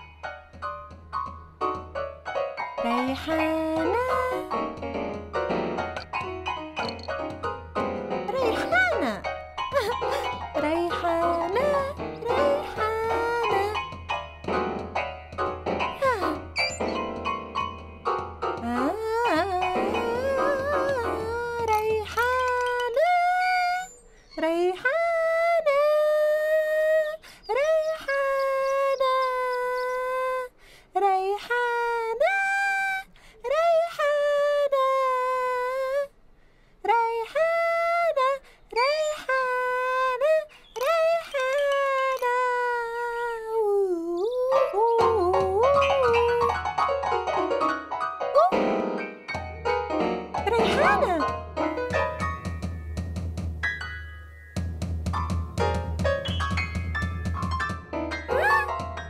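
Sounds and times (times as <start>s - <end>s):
childlike voice singing: 10.6s - 13.8s, 18.6s - 36.1s, 36.9s - 46.6s, 50.5s - 51.2s.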